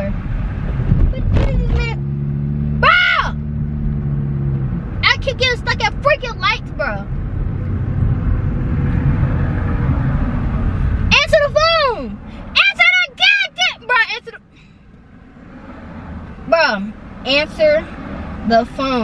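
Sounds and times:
car cabin road rumble: 0:00.0 - 0:19.0.

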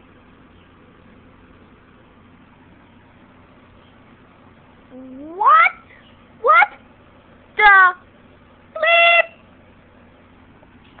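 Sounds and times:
person making pitched calls: 0:04.9 - 0:06.8, 0:08.8 - 0:09.4.

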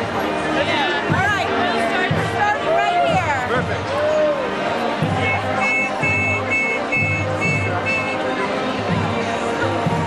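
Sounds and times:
street crowd noise: 0:00.0 - 0:10.0
high two-note beeps: 0:05.2 - 0:08.3.

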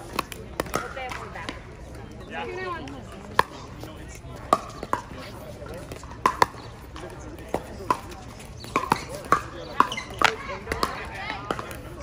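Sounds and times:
paddles hitting plastic ball: 0:00.0 - 0:01.6, 0:05.8 - 0:11.8
voices: 0:00.0 - 0:12.0.

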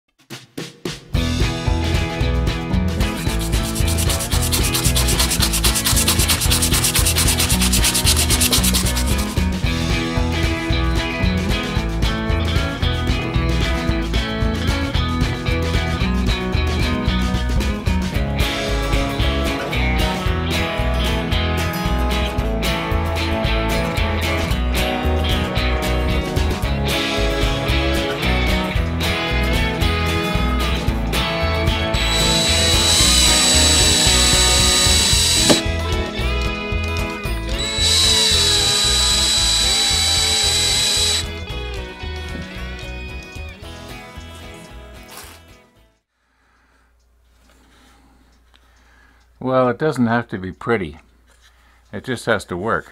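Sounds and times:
guitar music with steady beat: 0:01.1 - 0:45.7
power drill whining: 0:32.0 - 0:35.7, 0:37.5 - 0:41.3.

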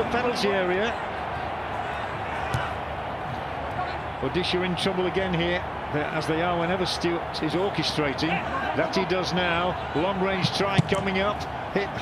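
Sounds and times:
football being kicked: 0:02.5 - 0:02.8, 0:10.8 - 0:11.0.

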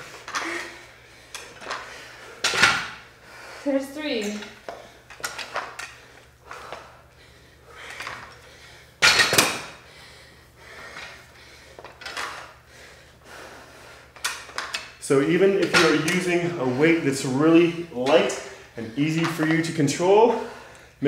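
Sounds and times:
metal dumbbells clanking: 0:09.0 - 0:09.7, 0:15.6 - 0:16.3.

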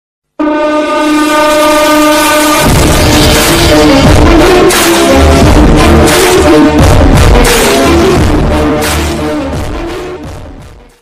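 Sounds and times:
train horn blast: 0:00.3 - 0:10.0.

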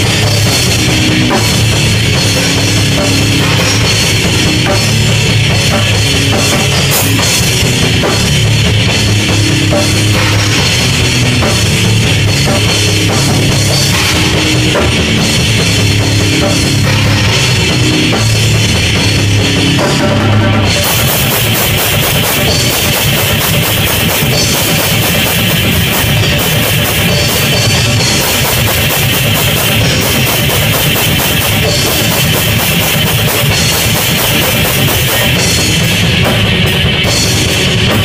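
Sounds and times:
distorted electric guitar riff: 0:00.0 - 0:38.0
drum kit: 0:00.0 - 0:38.0
crashing cymbals: 0:20.7 - 0:38.0.

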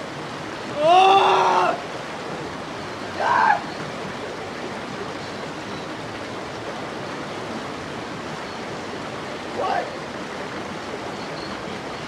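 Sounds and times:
rushing outdoor background noise: 0:00.0 - 0:12.0
short voice exclamation: 0:09.6 - 0:10.0.

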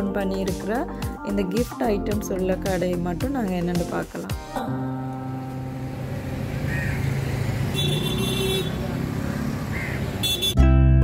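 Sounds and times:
road traffic rumble: 0:04.8 - 0:10.6
vehicle horn toot: 0:07.6 - 0:09.0, 0:10.2 - 0:10.6.

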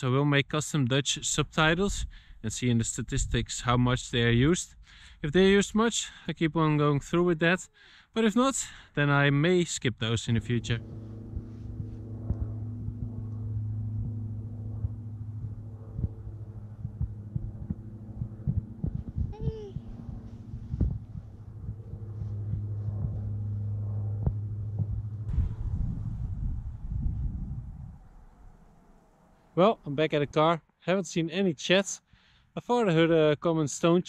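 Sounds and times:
steady low hum: 0:01.0 - 0:30.6.

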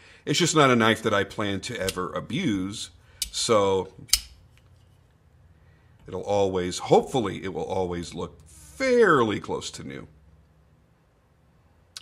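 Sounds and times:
folding knife metallic click: 0:04.1 - 0:04.4.

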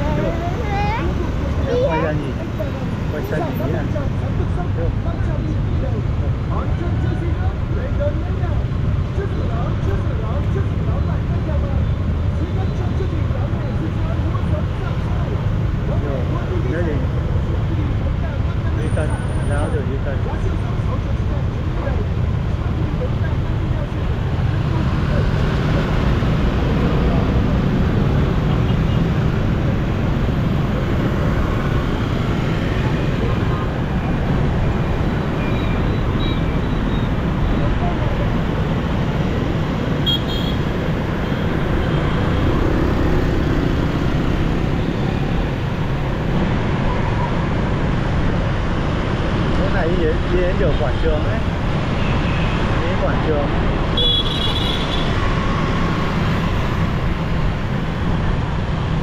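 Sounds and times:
motor scooter traffic rumble: 0:00.0 - 0:59.0
motorbike engine and road noise: 0:00.0 - 0:59.0.

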